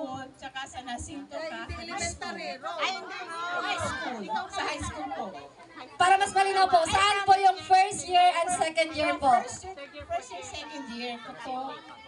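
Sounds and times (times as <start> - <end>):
people chattering: 0.0 - 12.0.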